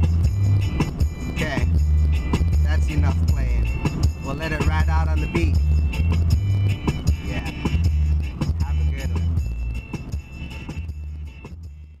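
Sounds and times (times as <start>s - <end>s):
song on car stereo: 0.0s - 12.0s.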